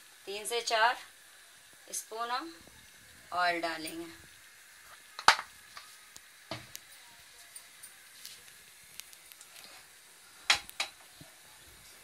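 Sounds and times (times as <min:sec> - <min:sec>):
cooking oil sizzling: 0:00.0 - 0:12.0
clicks and knocks of kitchen items: 0:05.2 - 0:05.5, 0:10.5 - 0:11.1.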